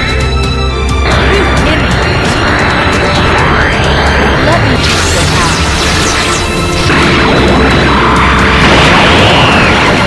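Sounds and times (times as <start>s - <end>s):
background music: 0.0s - 10.0s
energy attack crash: 4.7s - 10.0s.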